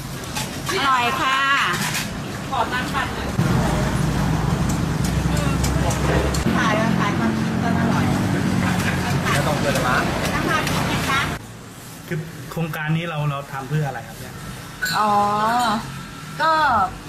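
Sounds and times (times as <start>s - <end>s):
people talking: 2.5s - 4.0s, 5.3s - 11.4s
vehicle engine humming: 3.0s - 11.4s.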